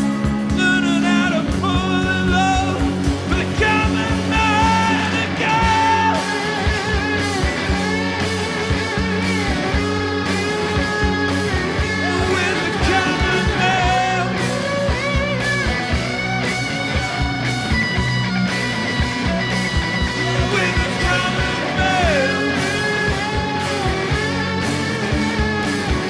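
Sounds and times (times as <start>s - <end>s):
bass guitar: 0.0s - 26.0s
electric guitar: 0.0s - 26.0s
steady drum beat: 0.0s - 26.0s.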